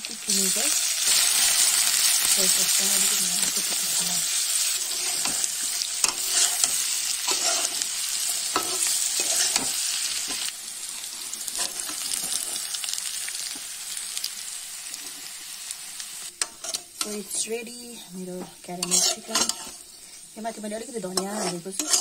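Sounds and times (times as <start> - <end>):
chicken sizzling in a wok: 0.0 - 22.0
metal utensil scraping a pan: 0.3 - 10.5, 11.4 - 12.7, 16.4 - 17.4, 18.7 - 20.2, 21.0 - 22.0.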